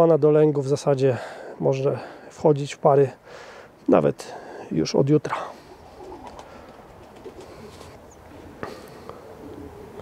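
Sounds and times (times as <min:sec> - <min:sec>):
pigeons cooing: 0:05.3 - 0:10.0.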